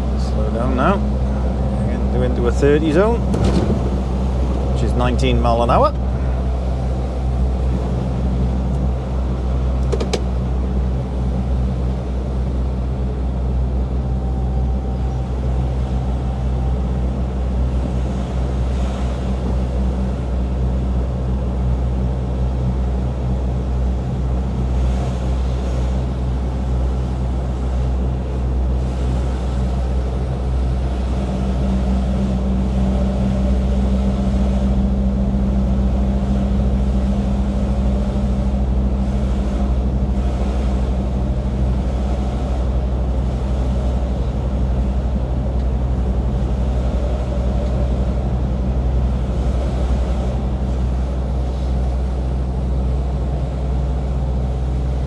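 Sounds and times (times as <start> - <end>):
lorry diesel engine drone: 0.0 - 55.0.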